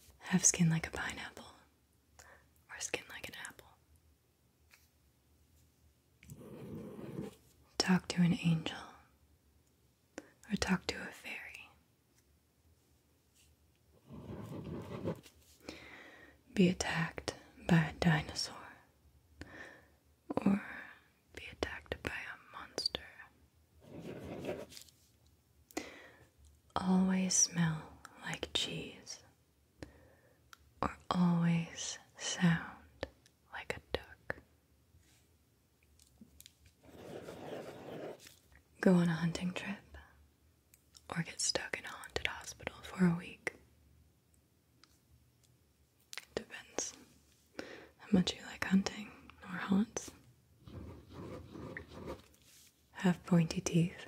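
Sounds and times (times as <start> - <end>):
woman whispering: 0.2 - 1.7, 2.6 - 3.8, 7.8 - 9.1, 10.2 - 11.8, 16.5 - 18.9, 20.3 - 23.4, 26.8 - 29.3, 30.8 - 34.4, 38.8 - 40.2, 41.0 - 43.6, 46.2 - 47.1, 48.0 - 50.2, 52.9 - 54.0.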